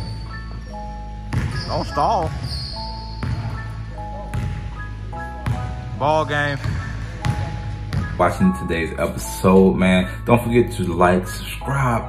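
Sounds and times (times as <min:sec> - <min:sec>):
music: 0:00.0 - 0:12.0
basketball bouncing on hardwood: 0:01.3 - 0:02.6, 0:03.2 - 0:03.6, 0:04.3 - 0:04.6, 0:05.4 - 0:05.8, 0:06.6 - 0:08.2.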